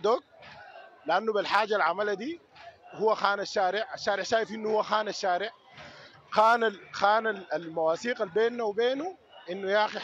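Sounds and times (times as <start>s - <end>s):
man talking: 1.1s - 5.6s, 6.3s - 10.0s.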